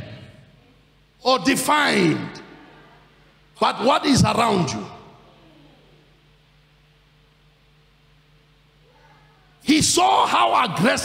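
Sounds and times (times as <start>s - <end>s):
man's loud word echoing: 0.0s - 0.5s, 1.2s - 2.7s, 3.6s - 5.2s, 9.6s - 11.0s
low steady hum: 0.0s - 11.0s.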